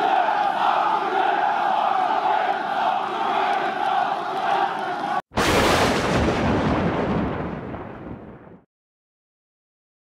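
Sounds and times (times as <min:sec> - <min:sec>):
stadium crowd chanting: 0:00.0 - 0:05.2
loud boom impact: 0:05.4 - 0:08.6.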